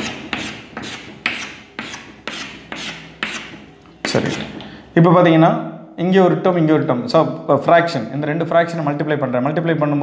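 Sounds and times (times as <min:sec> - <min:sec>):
chalk scraping on chalkboard: 0:00.0 - 0:04.6.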